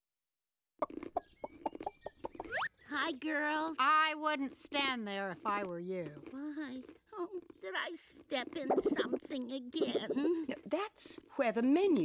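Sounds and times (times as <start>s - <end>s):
cartoon hen clucking: 8.7s - 10.3s.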